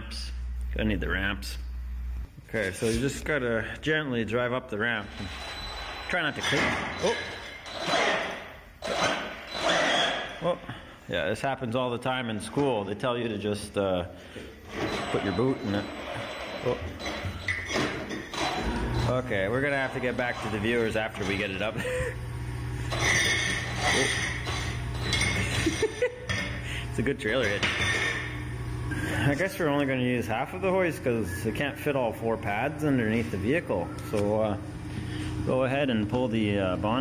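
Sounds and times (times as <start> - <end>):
metal ramps clinking and scraping: 14.8 - 21.6, 22.9 - 25.8.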